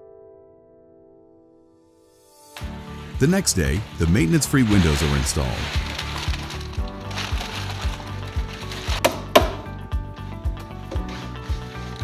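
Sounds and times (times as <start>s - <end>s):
background music with steady beat: 5.8s - 12.0s.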